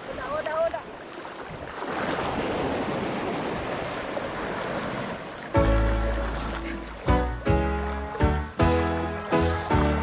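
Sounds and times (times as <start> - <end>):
sea water sloshing and lapping: 0.0 - 10.0.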